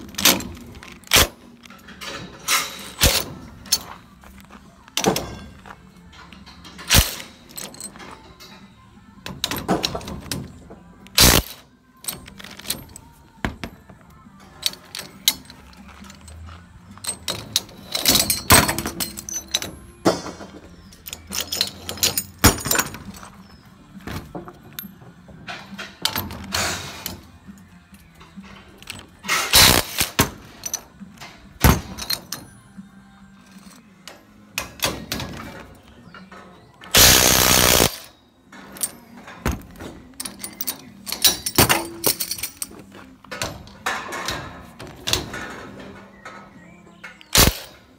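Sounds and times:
metallic clatter: 0:00.0 - 0:04.0, 0:05.0 - 0:27.5, 0:33.5 - 0:47.8
impact wrench hammering: 0:37.0 - 0:38.1.

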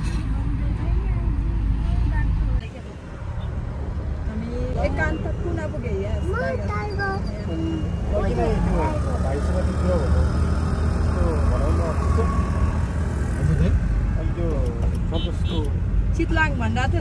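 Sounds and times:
car road and engine rumble: 0:00.0 - 0:17.0.

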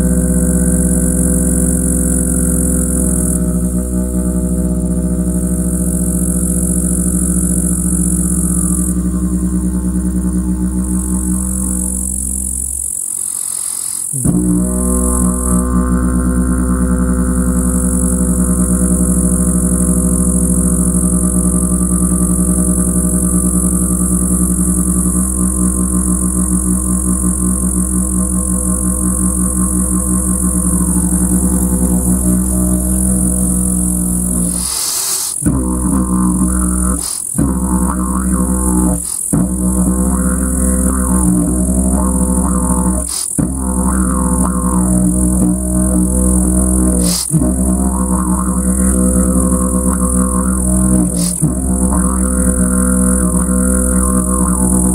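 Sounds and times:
didgeridoo drone: 0:00.0 - 0:54.9.

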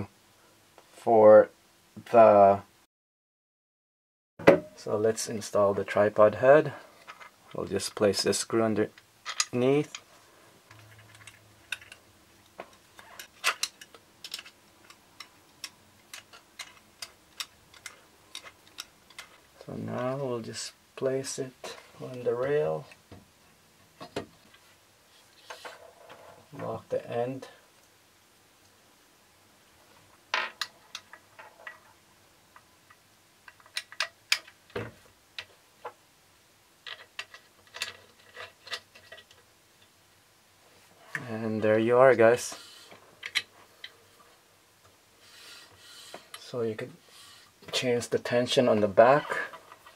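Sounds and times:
small metal clicks and taps: 0:10.8 - 0:19.4.

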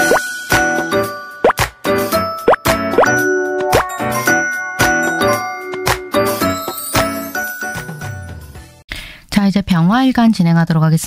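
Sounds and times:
tinkling bell-like jingle: 0:03.1 - 0:08.8.

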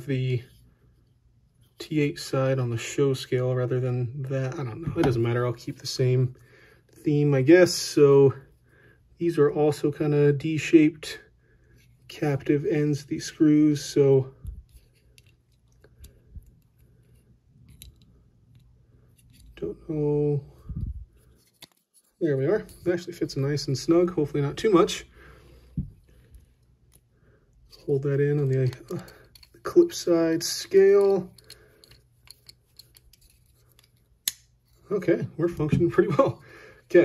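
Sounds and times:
faint clicks and scrapes of screw: 0:11.6 - 0:12.2, 0:14.6 - 0:19.6, 0:21.2 - 0:22.9, 0:26.0 - 0:34.9
sharp metallic click: 0:34.2 - 0:34.5.

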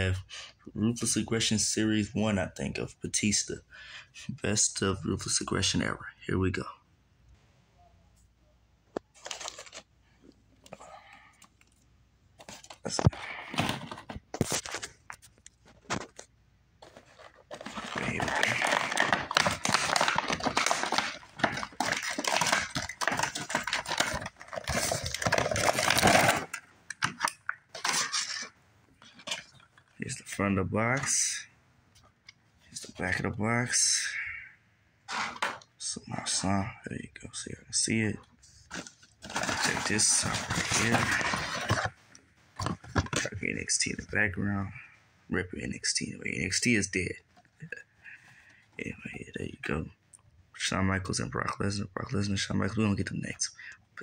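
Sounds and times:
cardboard and plastic tearing: 0:09.1 - 0:09.9, 0:16.8 - 0:29.6, 0:38.7 - 0:42.0.

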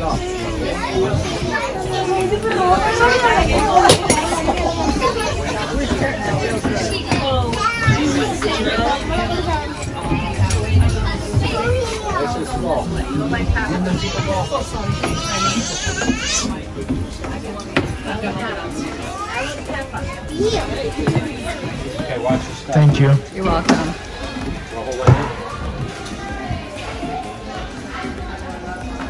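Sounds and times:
children chattering: 0:00.0 - 0:29.0
people talking at once: 0:00.0 - 0:29.0.

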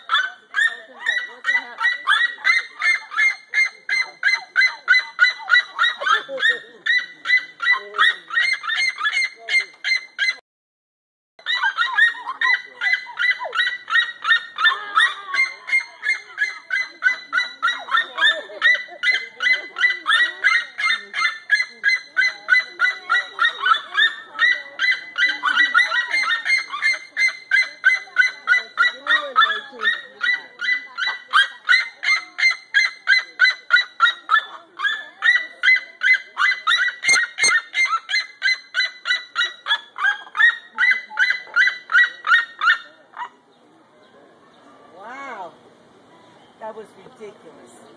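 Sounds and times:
birds screaming yelping calls: 0:00.0 - 0:10.4, 0:11.4 - 0:47.9.

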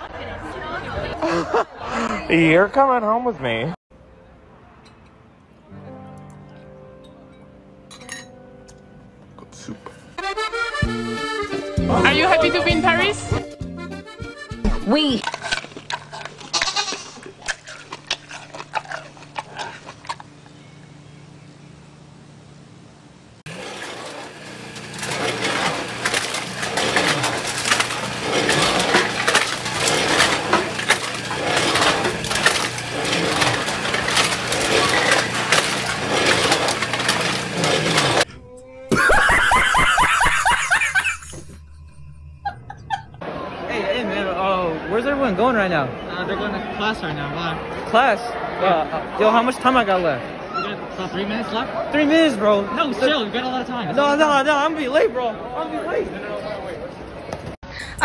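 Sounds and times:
metal instruments clinking: 0:07.0 - 0:08.4
aluminium cans clattering in metal chute: 0:24.9 - 0:38.2
steady low held tone: 0:41.4 - 0:43.5.

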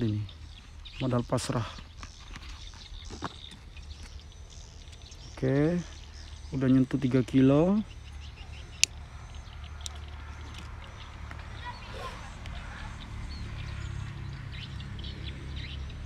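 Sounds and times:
small birds chirping: 0:00.0 - 0:16.0.

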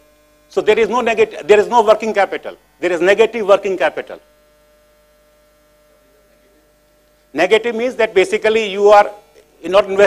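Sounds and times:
faint electrical hum: 0:00.0 - 0:10.0
man speaking: 0:00.5 - 0:04.2, 0:07.4 - 0:10.0.

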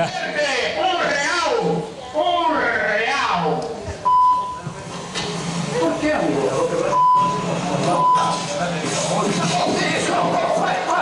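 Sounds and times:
high-pitched censor bleeps: 0:04.0 - 0:04.6.

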